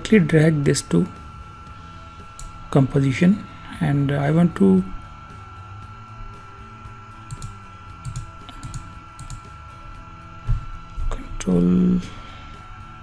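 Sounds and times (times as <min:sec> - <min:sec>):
faint background music: 0:00.0 - 0:13.0
high-pitched electrical whine: 0:00.0 - 0:13.0.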